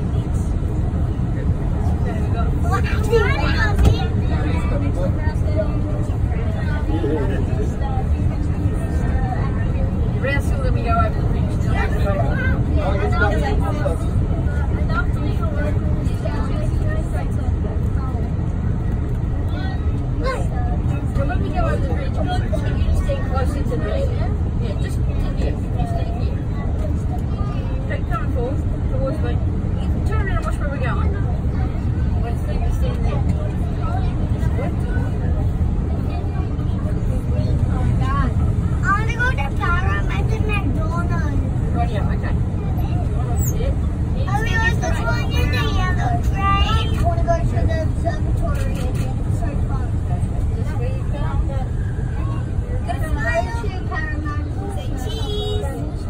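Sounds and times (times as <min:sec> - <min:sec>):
train rumbling at speed: 0:00.0 - 0:56.0.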